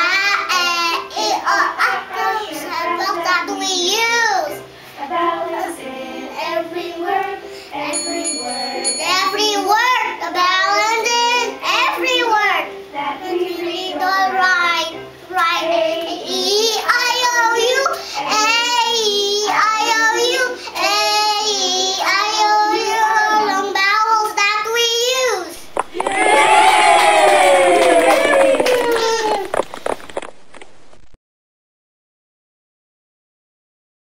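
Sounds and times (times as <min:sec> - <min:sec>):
girl singing vowel sounds: 0:00.0 - 0:25.7
drawn-out falling sound: 0:25.6 - 0:31.2.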